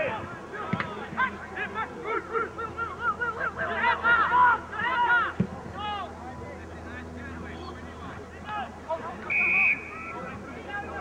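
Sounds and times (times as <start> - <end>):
voices shouting over one another: 0.0 - 6.1.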